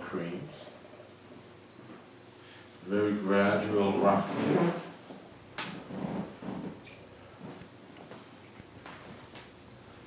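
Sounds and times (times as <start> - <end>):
massage table creaking: 4.0 - 9.4.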